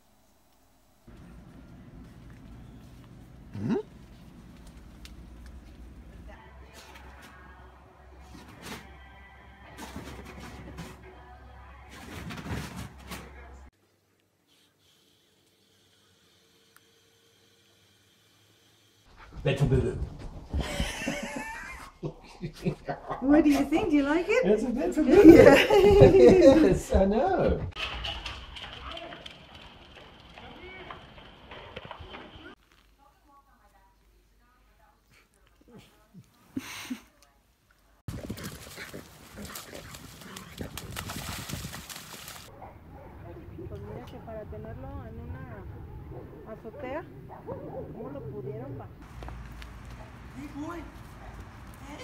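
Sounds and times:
music: 6.4s - 13.7s
dog paws tapping on concrete: 25.2s - 32.8s, 49.0s - 52.0s
voices: 42.4s - 52.0s.

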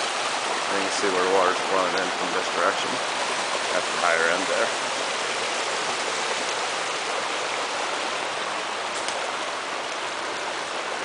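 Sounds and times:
brook flowing over stones: 0.0s - 11.0s.

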